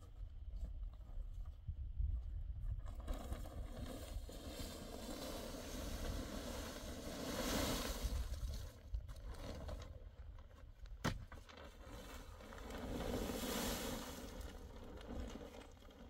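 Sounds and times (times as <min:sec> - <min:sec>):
plastic sheeting rustling: 0:03.2 - 0:10.4, 0:11.3 - 0:16.0.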